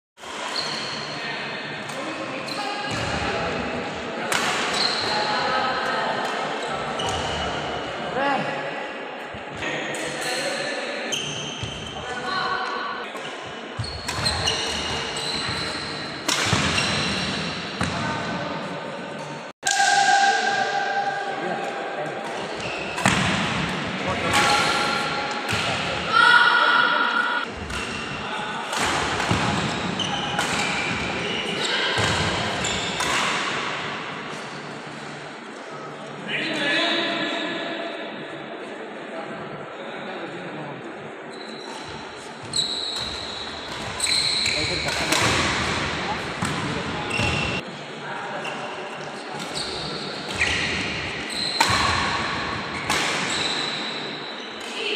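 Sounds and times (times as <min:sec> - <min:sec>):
racket striking shuttlecock: 0:44.9 - 0:46.8, 0:51.6 - 0:52.2.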